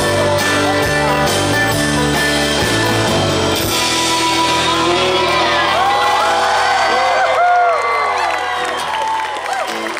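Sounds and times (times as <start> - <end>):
band chord ringing: 0.0 - 6.3
crowd cheering and whooping: 4.0 - 9.9.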